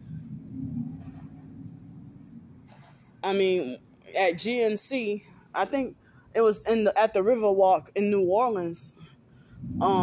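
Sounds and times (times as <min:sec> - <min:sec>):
low background rumble: 0:00.0 - 0:06.4, 0:09.0 - 0:10.0
faint hum: 0:00.0 - 0:07.2, 0:07.8 - 0:10.0.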